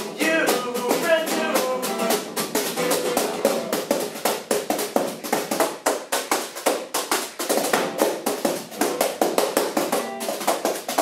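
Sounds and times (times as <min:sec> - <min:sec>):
acoustic guitar chords: 0:00.0 - 0:04.0
drum brushes tapping desktop objects: 0:00.0 - 0:11.0.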